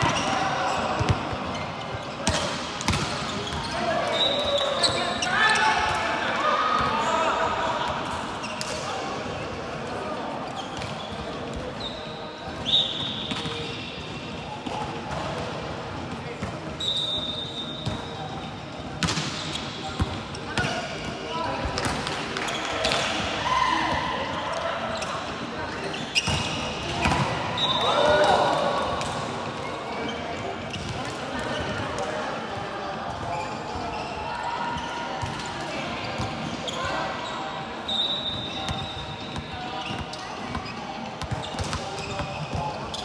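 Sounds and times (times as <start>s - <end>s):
sneakers squeaking on court: 0.0s - 5.8s, 10.4s - 15.4s, 16.4s - 23.1s, 24.5s - 28.2s, 29.0s - 31.8s, 33.1s - 43.0s.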